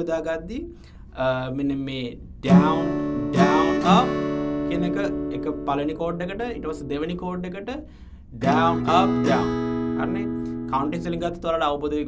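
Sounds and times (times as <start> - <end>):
acoustic guitar strum ringing: 2.4 - 6.0, 8.4 - 11.3.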